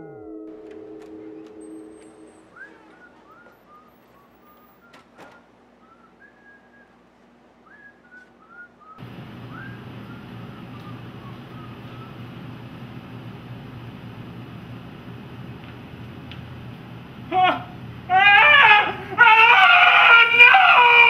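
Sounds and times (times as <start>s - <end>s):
steady background hum: 0.5s - 21.0s
person whistling a tune: 1.9s - 5.1s, 7.7s - 12.2s.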